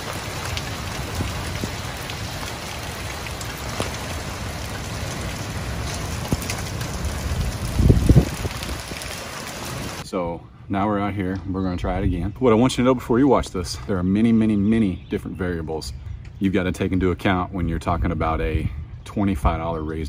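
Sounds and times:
steady rain falling: 0.0s - 10.0s.

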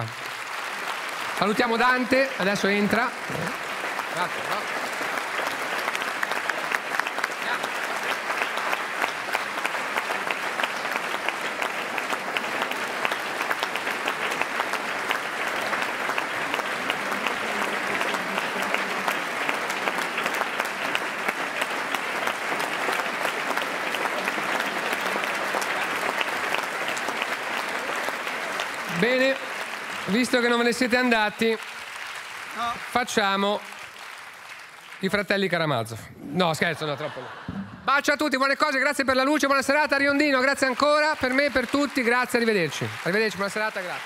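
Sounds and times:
audience applauding: 0.0s - 44.0s.

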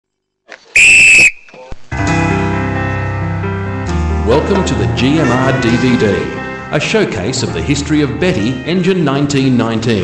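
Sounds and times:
steam locomotive whistle blast: 0.8s - 1.5s.

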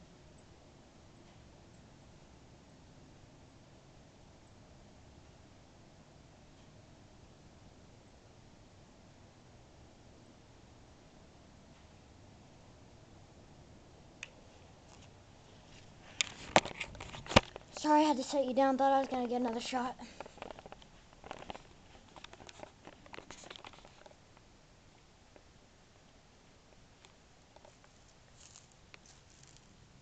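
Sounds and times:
faint ticks and rustles: 0.0s - 2.0s, 6.4s - 7.0s, 11.6s - 12.8s, 14.1s - 30.0s
camera handling knocks and rustling: 16.1s - 17.7s.

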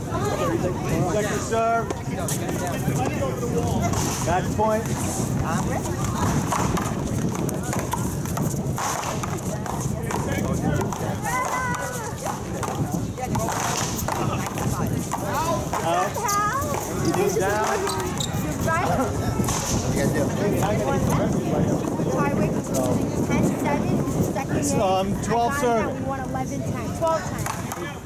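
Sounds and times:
people talking and calling out: 0.0s - 28.0s
rubber ball struck by paddles: 3.9s - 18.2s.

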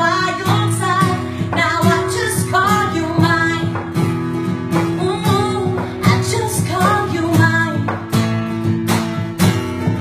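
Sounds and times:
acoustic guitar: 0.0s - 10.0s
woman singing country song: 0.0s - 10.0s.

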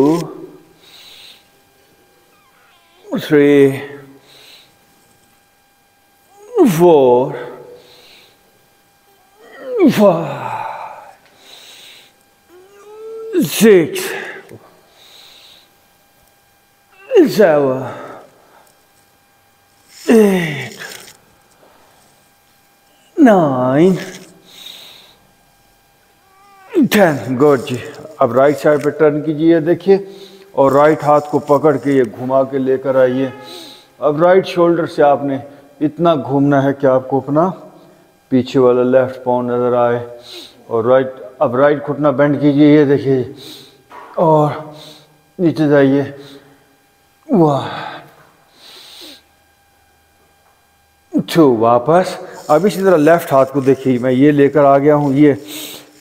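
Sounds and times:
faint high-pitched call: 2.3s - 3.2s, 33.0s - 33.8s.

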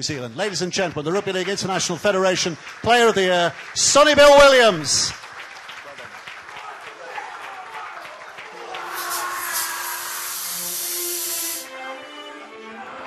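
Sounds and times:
audience applauding: 0.0s - 11.7s
music playing: 8.6s - 13.0s.

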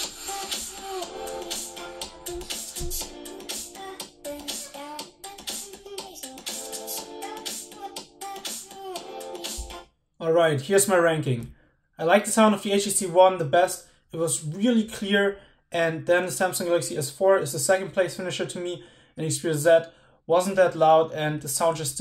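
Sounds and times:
pop song from phone speakers: 0.0s - 10.0s.

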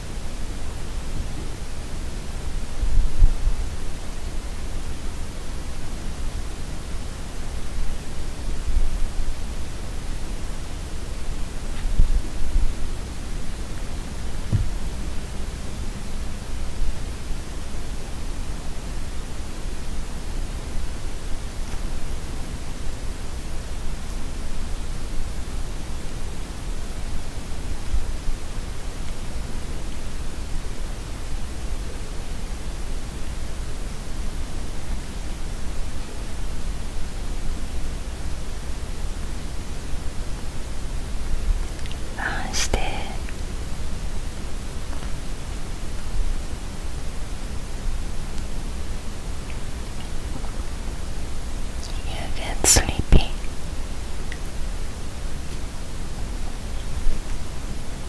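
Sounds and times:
steady background hiss: 0.0s - 58.0s
soft voice sound: 41.8s - 43.4s, 51.8s - 53.5s.

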